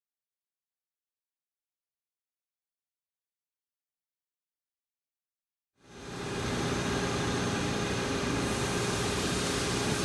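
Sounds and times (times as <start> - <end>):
lathe machine hum: 5.8 - 10.0.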